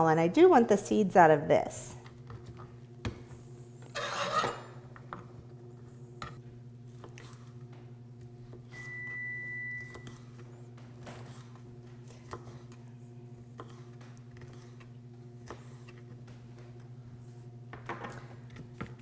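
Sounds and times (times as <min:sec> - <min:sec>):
steady electrical hum: 0:00.0 - 0:19.0.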